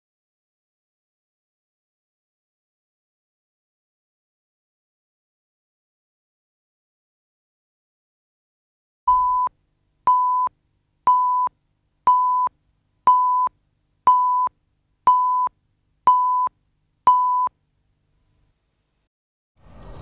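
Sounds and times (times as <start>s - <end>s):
short tone beeps: 9.1s - 9.5s, 10.1s - 10.5s, 11.1s - 11.5s, 12.1s - 12.5s, 13.1s - 13.5s, 14.1s - 14.5s, 15.1s - 15.5s, 16.1s - 17.5s.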